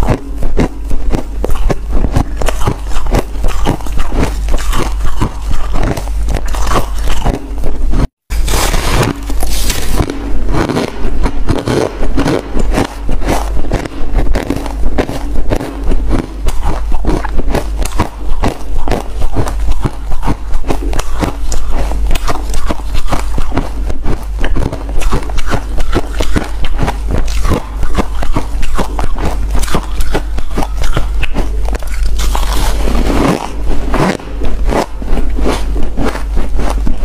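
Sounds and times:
crunching ice being chewed: 0.0 - 37.0.

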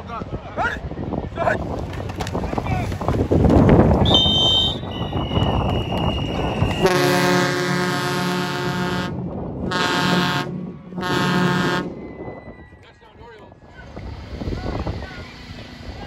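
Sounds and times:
stadium crowd noise: 0.0 - 8.0
high steady whistles: 4.0 - 7.0, 11.9 - 13.1
air horn blasts: 6.8 - 12.7.

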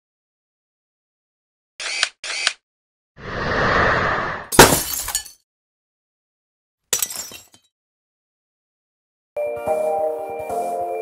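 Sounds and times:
whoosh: 3.2 - 4.5
glass-shattering crash: 4.5 - 5.4.

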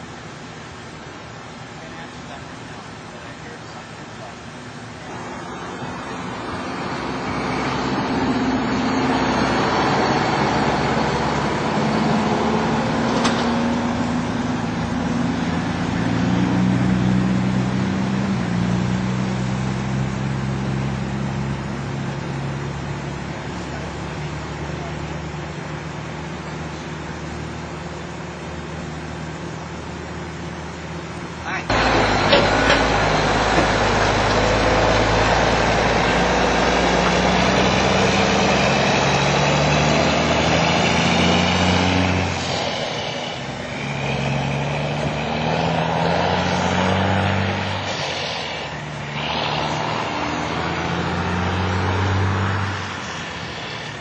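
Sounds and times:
vehicle engine humming: 0.0 - 54.0
loud rushing noise with rumble: 31.5 - 54.0.

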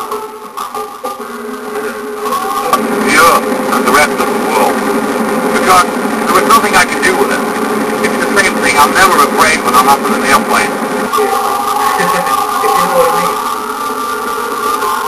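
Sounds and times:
music: 0.0 - 4.1, 11.0 - 15.0
car road noise: 0.0 - 15.0.

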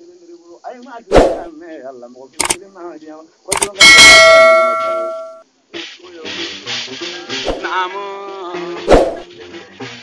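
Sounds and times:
bell-like ding: 3.7 - 5.4.

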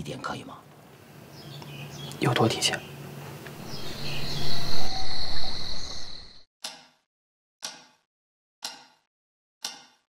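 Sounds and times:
low hum: 3.2 - 6.4
night insect chorus: 3.6 - 6.4
wall clock tick: 7.6 - 8.0, 8.6 - 10.0.

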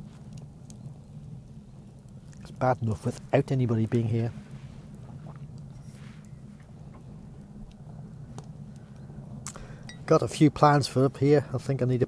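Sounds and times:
steady low rumble: 0.0 - 12.0
wood fire crackling: 0.0 - 12.0.

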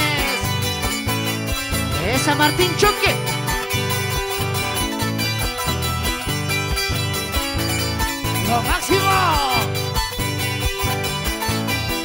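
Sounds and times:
live band playing dance music: 0.0 - 12.0.

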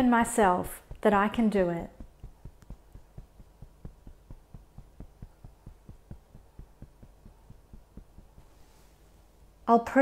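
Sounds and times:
fingertips tapping on body: 0.8 - 8.8.

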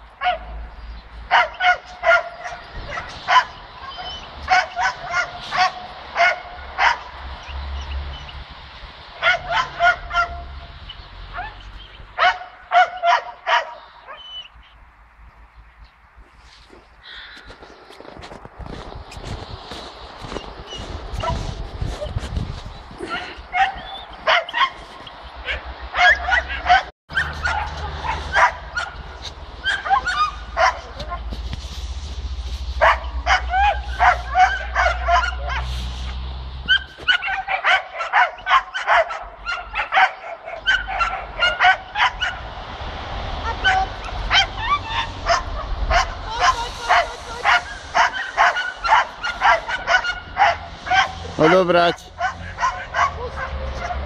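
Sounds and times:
dogs barking and yipping: 0.0 - 14.8, 19.7 - 31.7, 32.4 - 54.0.

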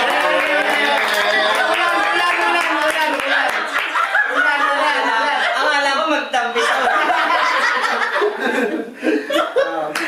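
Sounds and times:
people laughing: 0.0 - 10.0.

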